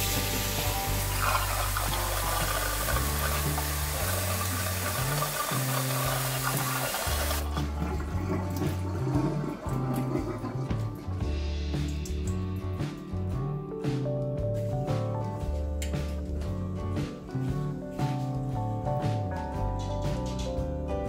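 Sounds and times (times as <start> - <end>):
tap water splashing into sink: 0.0 - 13.3
background music: 0.0 - 21.0.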